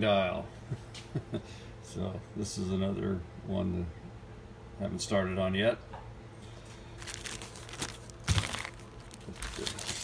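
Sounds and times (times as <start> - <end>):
plastic bag crinkling: 7.0 - 10.0.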